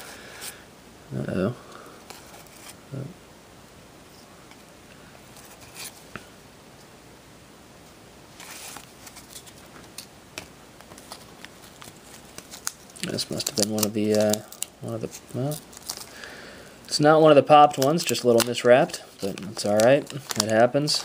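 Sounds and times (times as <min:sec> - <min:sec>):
trading cards sliding and shuffling: 0:05.3 - 0:06.2, 0:08.4 - 0:10.1
wax paper pack rustling: 0:10.8 - 0:21.0.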